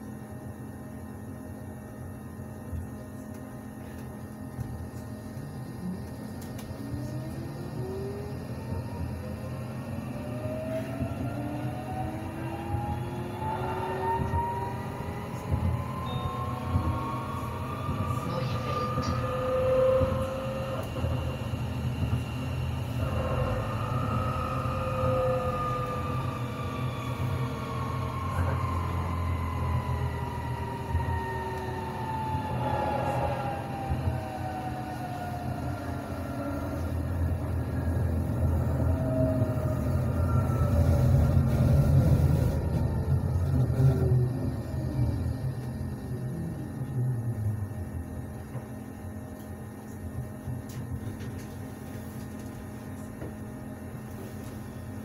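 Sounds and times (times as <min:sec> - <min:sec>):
electric drive whine: 0:00.0 - 0:51.6
tram wheels rumbling on rails: 0:05.8 - 0:48.9.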